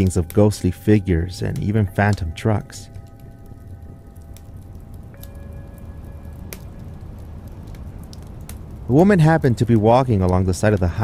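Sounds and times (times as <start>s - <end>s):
ambient drone music: 0.0s - 9.4s
log fire crackling and popping: 0.0s - 11.0s.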